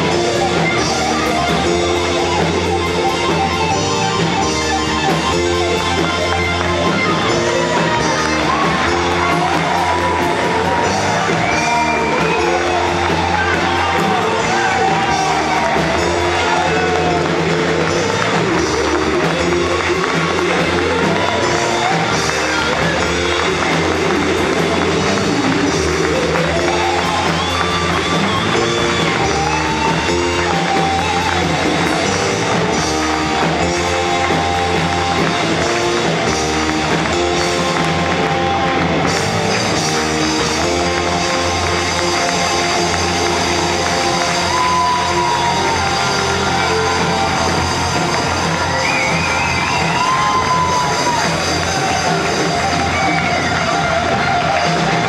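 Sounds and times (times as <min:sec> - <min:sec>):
drum kit: 0:00.0 - 0:55.0
electric bass: 0:00.0 - 0:55.0
electric guitar: 0:00.0 - 0:55.0
keyboard: 0:00.0 - 0:55.0
pitch-bending melody line: 0:00.0 - 0:55.0.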